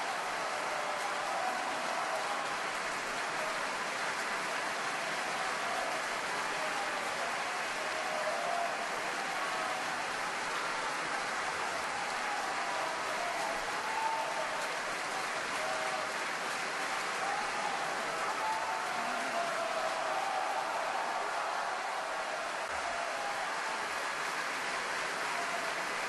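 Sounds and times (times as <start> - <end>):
audience applauding: 0.0 - 26.0.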